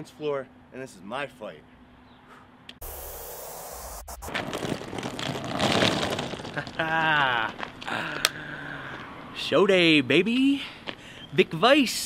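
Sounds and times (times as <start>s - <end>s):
street ambience: 0.0s - 12.0s.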